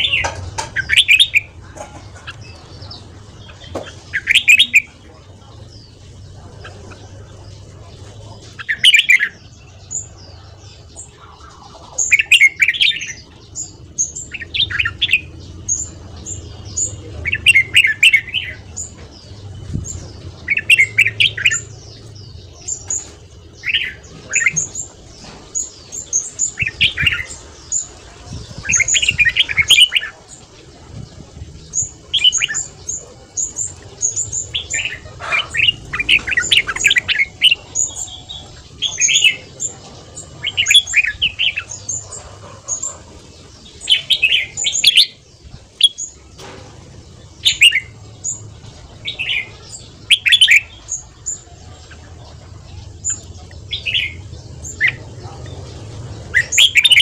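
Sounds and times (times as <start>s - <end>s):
bird warbling song: 0.0s - 57.0s.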